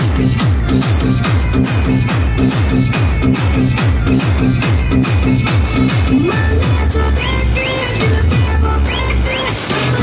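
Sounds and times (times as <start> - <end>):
loud dance music: 0.0 - 10.0.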